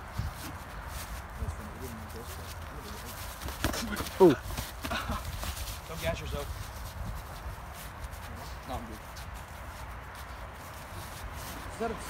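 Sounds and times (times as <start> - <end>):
feet shuffling on leaves: 0.0 - 12.0.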